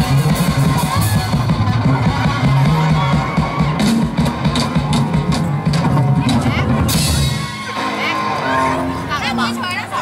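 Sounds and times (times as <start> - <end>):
live rock band over pa speakers: 0.0 - 10.0.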